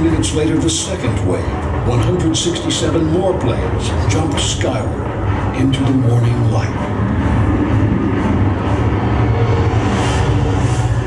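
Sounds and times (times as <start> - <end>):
propeller warplane engines droning: 2.6 - 11.0.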